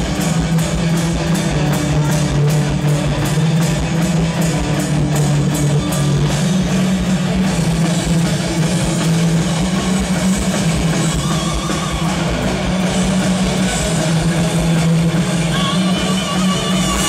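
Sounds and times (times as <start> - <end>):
metal band playing live: 0.0 - 17.0.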